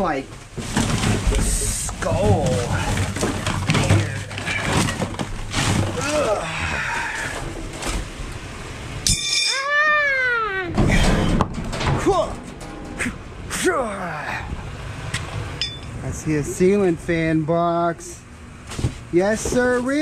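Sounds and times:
call rising and falling in pitch: 0:09.3 - 0:10.7
metal wheels clattering on concrete: 0:10.9 - 0:13.1.

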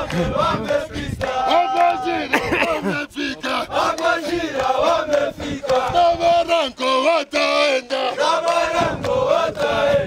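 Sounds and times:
men singing a chant: 0:00.0 - 0:10.0.

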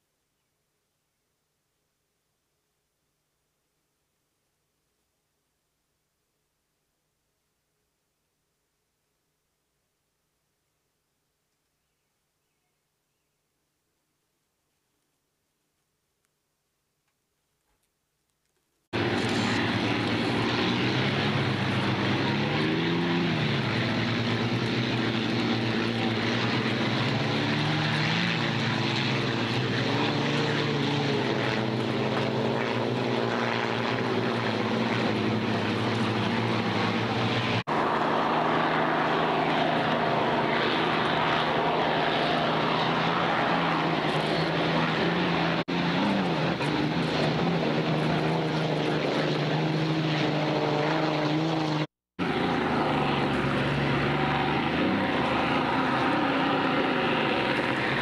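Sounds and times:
racing boat engines: 0:19.0 - 0:58.0.

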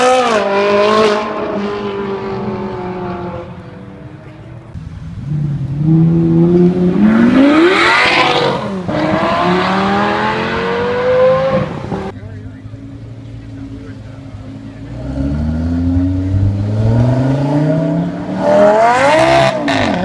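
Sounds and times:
sports car accelerating hard: 0:00.0 - 0:12.1, 0:14.4 - 0:20.0
car engine driving away: 0:00.0 - 0:20.0.

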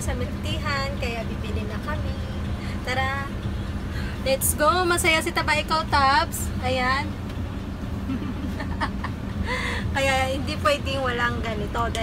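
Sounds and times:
woman speaking: 0:00.0 - 0:03.4, 0:04.2 - 0:07.2, 0:10.0 - 0:12.0
low hum inside car: 0:00.0 - 0:12.0.

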